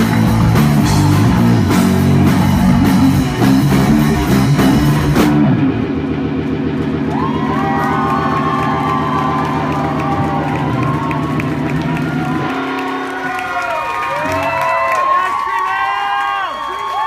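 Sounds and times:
crowd cheering and whistling: 6.9s - 17.0s.

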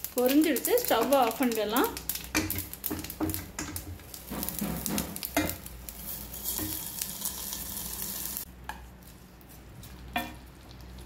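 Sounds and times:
hot oil sizzling: 0.0s - 8.5s, 9.6s - 11.0s.

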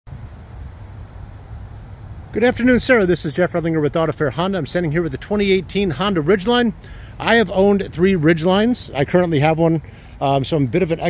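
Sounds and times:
faint hiss: 0.1s - 11.0s
low outdoor rumble: 0.1s - 11.0s.

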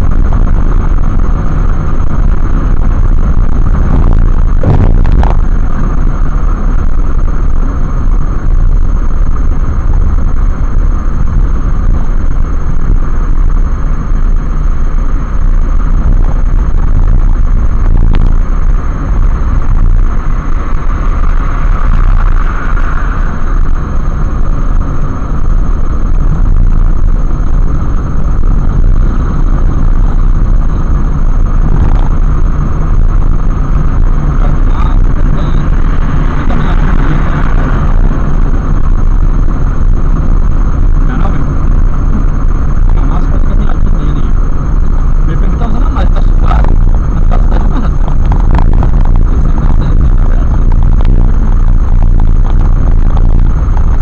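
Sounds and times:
car road and engine rumble: 0.0s - 54.0s.

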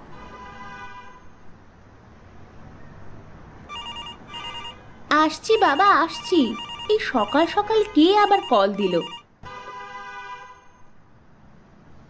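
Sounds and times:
telephone ringing: 3.7s - 9.3s.

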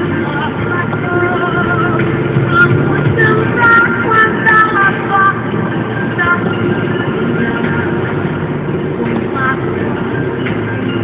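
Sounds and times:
car engine and road noise: 0.0s - 11.0s
music playing: 0.0s - 11.0s.

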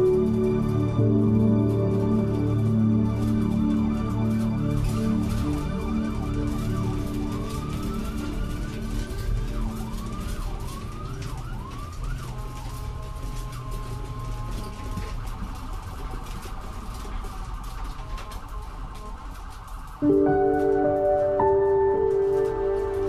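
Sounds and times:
constant crackle: 0.0s - 23.0s.

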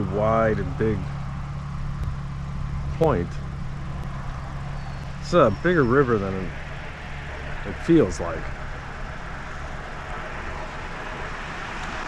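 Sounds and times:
low rumble: 0.0s - 12.0s.

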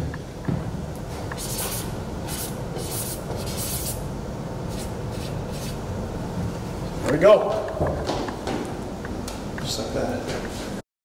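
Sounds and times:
scratchy marker pen strokes: 1.4s - 4.0s, 4.7s - 5.8s.

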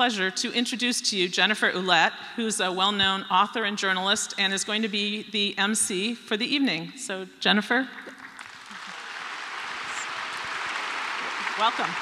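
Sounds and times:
audience applauding: 8.1s - 12.0s.

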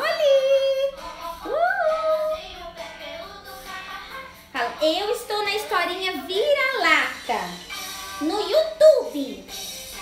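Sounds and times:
person singing a song: 0.0s - 10.0s.

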